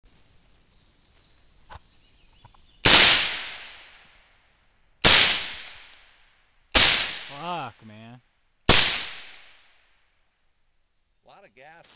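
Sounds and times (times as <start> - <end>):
suppressed rifle shots echoing: 2.8 - 4.0, 5.0 - 6.0, 6.7 - 7.4, 8.7 - 9.7.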